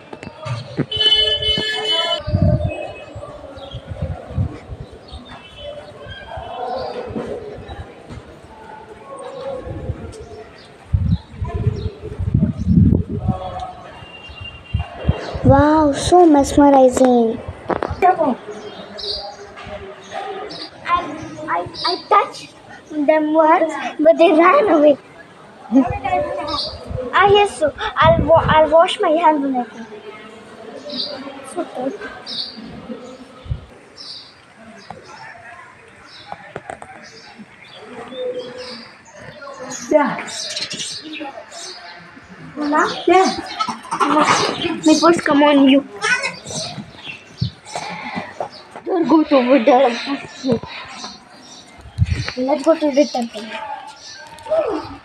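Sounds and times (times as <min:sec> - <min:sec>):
quiet talking: 0:00.0 - 0:55.0.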